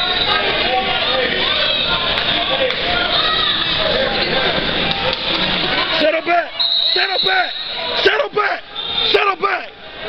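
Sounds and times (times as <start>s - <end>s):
spectators chattering: 0.0s - 10.0s.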